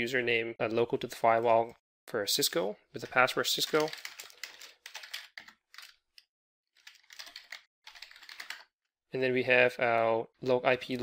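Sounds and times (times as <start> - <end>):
computer keyboard typing: 3.5 - 6.2, 6.8 - 8.7.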